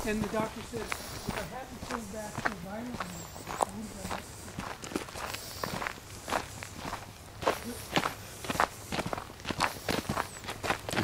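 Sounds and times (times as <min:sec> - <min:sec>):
footsteps on dirt and leaves: 0:00.0 - 0:11.0.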